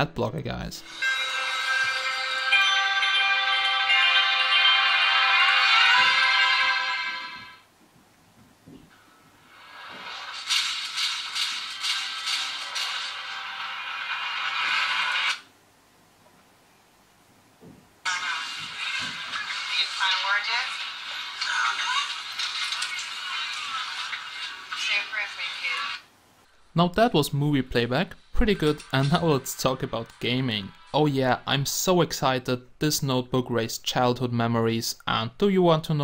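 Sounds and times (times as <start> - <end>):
music through small laptop speakers: 0.9 - 7.6, 9.3 - 15.5, 18.1 - 25.8
movie dialogue: 18.1 - 35.4.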